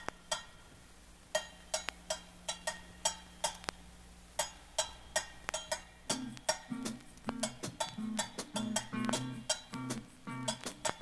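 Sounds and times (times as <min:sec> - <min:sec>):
steady low hum: 0:00.0 - 0:11.0
hand percussion strikes: 0:01.4 - 0:03.8, 0:04.4 - 0:11.0.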